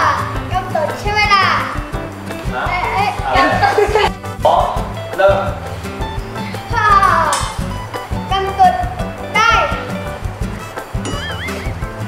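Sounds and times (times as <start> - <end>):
background music with beat: 0.0 - 12.0
horse whinny: 11.1 - 11.9.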